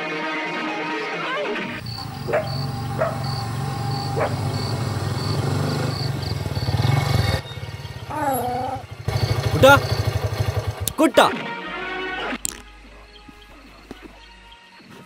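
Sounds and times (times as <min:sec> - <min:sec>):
dog barking: 0:01.8 - 0:04.9
motorcycle engine idling: 0:01.8 - 0:11.0.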